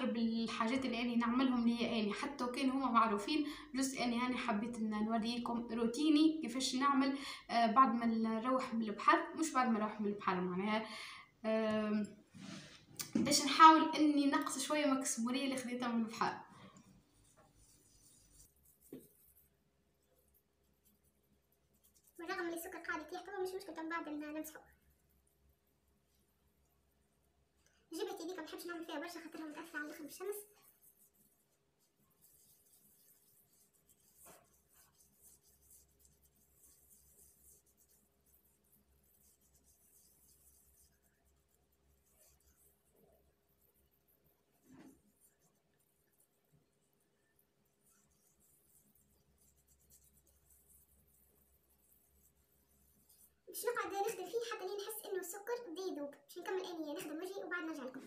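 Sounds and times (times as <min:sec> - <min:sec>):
scrub rubbing on skin: 0:12.3 - 0:26.6, 0:28.0 - 0:58.0.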